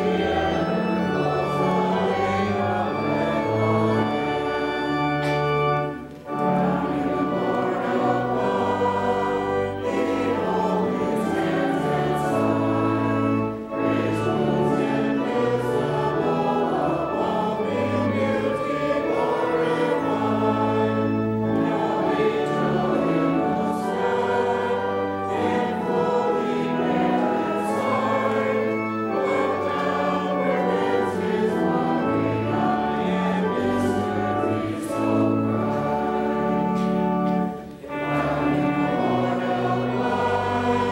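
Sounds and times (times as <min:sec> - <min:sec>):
choir singing held chords: 0:00.0 - 0:40.9.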